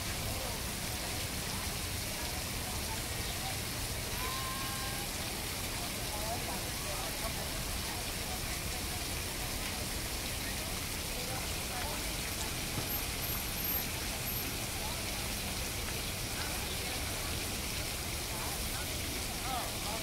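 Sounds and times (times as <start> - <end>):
faint voices murmuring: 0.0 - 20.0
rain-like hiss: 0.0 - 20.0.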